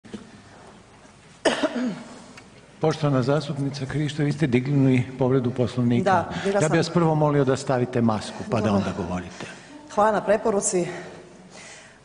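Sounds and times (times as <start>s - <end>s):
person coughing: 1.4s - 2.2s.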